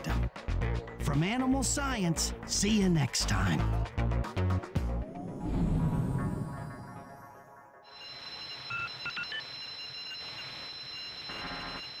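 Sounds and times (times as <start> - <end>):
high ringing electronic tone: 7.8 - 12.0.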